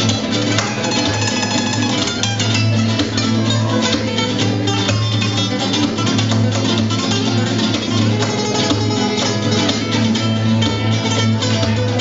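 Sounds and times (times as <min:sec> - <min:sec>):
flamenco acoustic guitars: 0:00.0 - 0:12.0.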